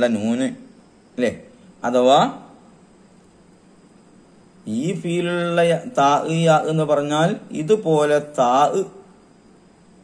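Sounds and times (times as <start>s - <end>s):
faint steady high whine: 0.0s - 10.0s.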